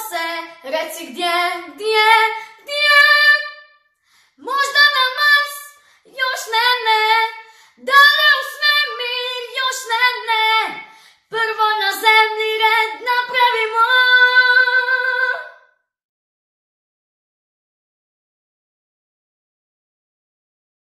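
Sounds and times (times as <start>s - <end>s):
girl singing unaccompanied: 0.0s - 3.6s, 4.4s - 15.5s.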